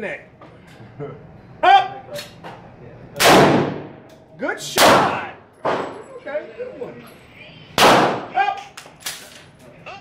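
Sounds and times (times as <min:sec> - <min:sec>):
revolver shot echoing indoors: 0:03.2 - 0:06.0, 0:07.8 - 0:09.3.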